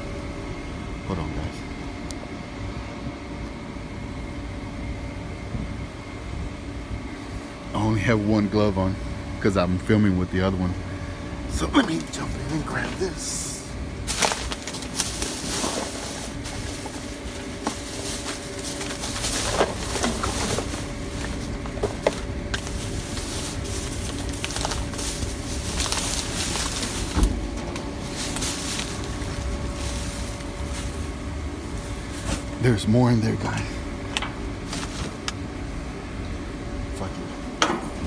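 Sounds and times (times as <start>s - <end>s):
faint hum: 0.0s - 38.0s
plastic bags rustling and crinkling: 14.0s - 32.7s, 34.6s - 35.2s.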